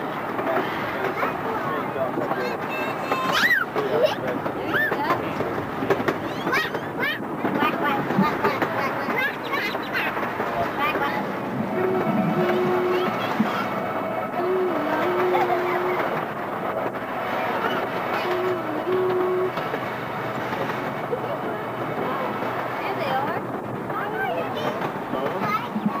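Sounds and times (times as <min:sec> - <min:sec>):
miniature train rumbling on track: 0:00.0 - 0:26.0.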